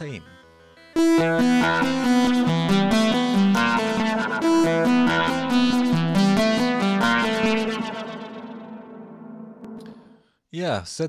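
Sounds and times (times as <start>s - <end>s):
synthesizer plucky melodic sequence: 0.0s - 10.1s.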